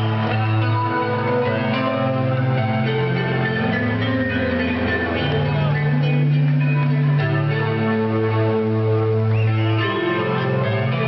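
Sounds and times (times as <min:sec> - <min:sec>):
live band chiming chords: 0:00.0 - 0:11.0.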